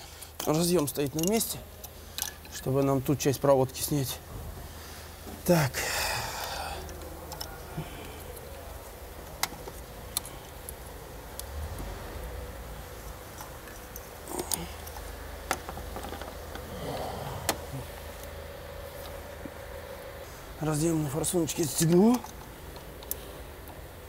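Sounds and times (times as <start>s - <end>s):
low steady hum: 0.0s - 24.0s
wiring rustling: 0.0s - 24.0s.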